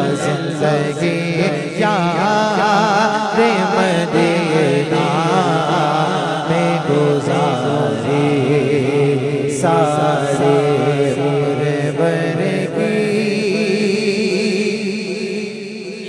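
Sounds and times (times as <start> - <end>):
male voices singing: 0.0 - 14.8
higher voice singing: 0.0 - 15.2.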